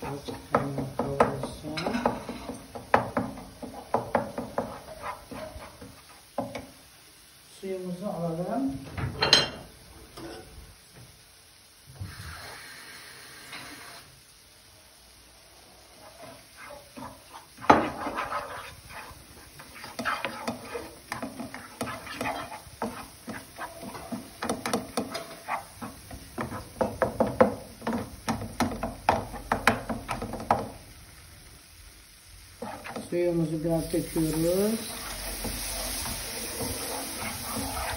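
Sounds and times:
wooden spoon scraping a pan: 0:00.0 - 0:06.7, 0:15.8 - 0:30.8, 0:32.6 - 0:37.9
spoon knocking against pan: 0:00.3 - 0:04.9, 0:19.6 - 0:30.8.

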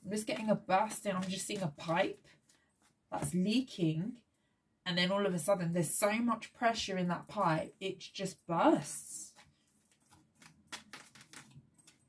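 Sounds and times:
cards being shuffled: 0:09.4 - 0:12.0.

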